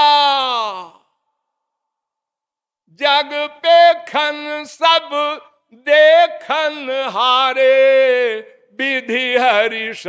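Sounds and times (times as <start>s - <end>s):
man's long falling naaa: 0.0s - 1.0s.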